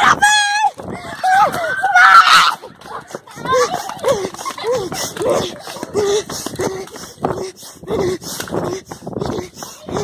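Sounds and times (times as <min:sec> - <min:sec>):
person panting or whimpering: 0:03.1 - 0:10.0.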